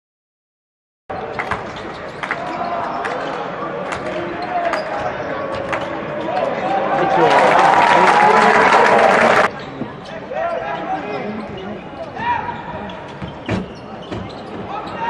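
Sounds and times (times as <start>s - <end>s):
loud crowd voices: 1.1s - 15.0s
scattered voices: 2.4s - 15.0s.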